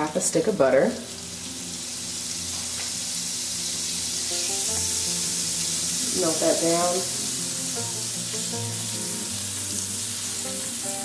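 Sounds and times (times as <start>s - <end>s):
butter sizzling in skillet: 0.0s - 11.0s
soft background music: 0.0s - 11.0s.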